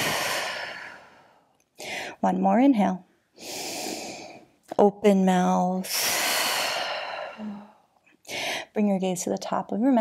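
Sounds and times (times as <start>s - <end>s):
woman exhaling forcefully: 0.0s - 1.3s.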